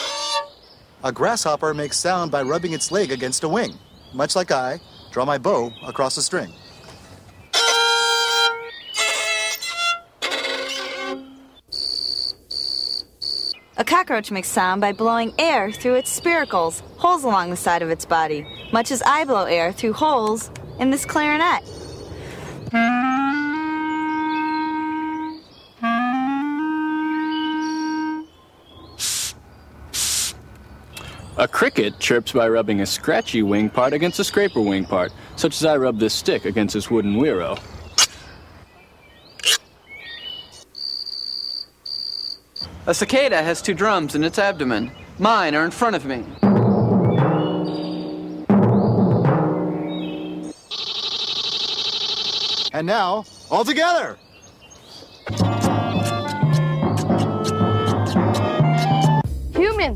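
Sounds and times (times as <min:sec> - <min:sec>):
clarinet playing runs: 0:00.0 - 0:00.6, 0:07.5 - 0:11.9, 0:22.7 - 0:28.3, 0:55.3 - 0:59.3
cicada buzzing: 0:07.6 - 0:13.6, 0:29.0 - 0:30.4, 0:40.7 - 0:42.7, 0:49.6 - 0:52.8
short airy hisses: 0:29.0 - 0:30.4
timpani struck with soft mallets: 0:46.4 - 0:50.5.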